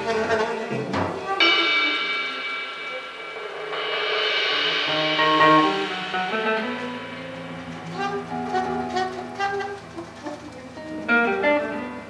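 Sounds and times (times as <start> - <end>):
soprano saxophone long notes: 7.9 - 12.0.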